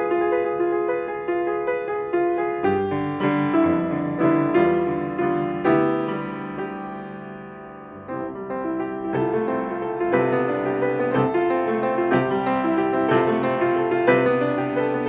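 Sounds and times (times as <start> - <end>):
grand piano playing: 0.0 - 15.0.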